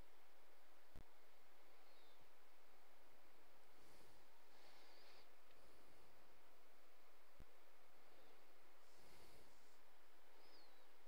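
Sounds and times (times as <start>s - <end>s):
faint hiss: 0.0s - 11.0s.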